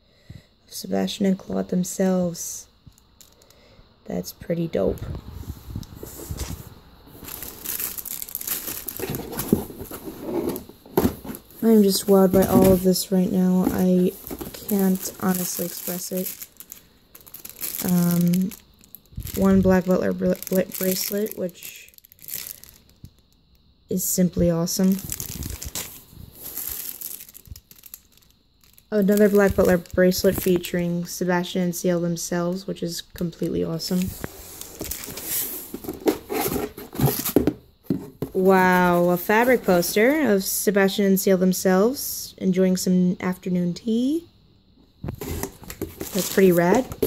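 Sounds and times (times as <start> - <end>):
plastic packaging crinkling: 6.0 - 23.1, 24.7 - 30.7, 33.8 - 37.5, 45.0 - 47.0.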